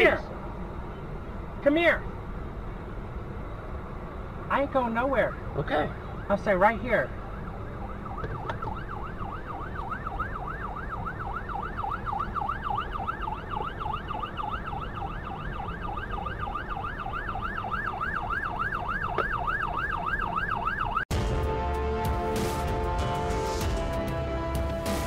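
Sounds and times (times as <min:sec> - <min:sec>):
emergency siren wailing: 0:05.0 - 0:25.0.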